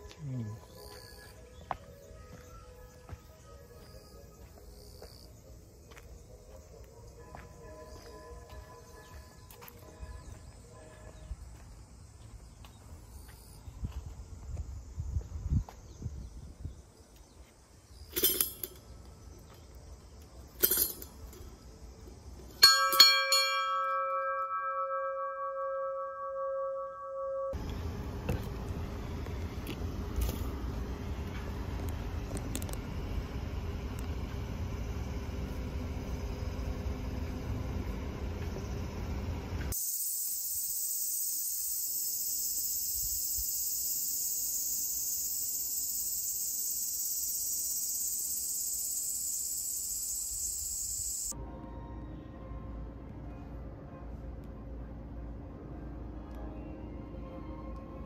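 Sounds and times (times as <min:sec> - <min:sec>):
cicadas droning: 0:00.0 - 0:23.5, 0:27.2 - 0:51.4
large bell ringing: 0:22.6 - 0:27.7.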